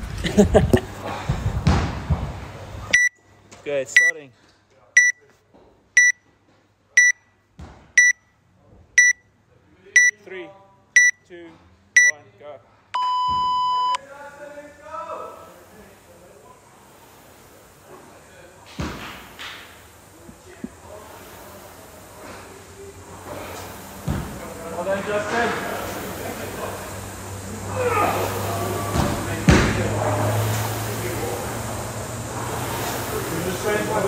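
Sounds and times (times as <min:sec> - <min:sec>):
short high timer beeps: 0:02.9 - 0:03.2, 0:04.0 - 0:04.2, 0:05.0 - 0:05.2, 0:06.0 - 0:06.2, 0:07.0 - 0:07.2, 0:08.0 - 0:08.2, 0:09.0 - 0:09.2, 0:10.0 - 0:10.2, 0:11.0 - 0:11.2, 0:13.0 - 0:14.0
long low timer beep: 0:03.0 - 0:03.2, 0:04.0 - 0:04.2, 0:05.0 - 0:05.2, 0:06.0 - 0:06.2, 0:07.0 - 0:07.2, 0:08.0 - 0:08.2, 0:09.0 - 0:09.2, 0:10.0 - 0:10.2, 0:11.0 - 0:11.2, 0:13.0 - 0:14.0
rowing machine running: 0:20.8 - 0:34.0.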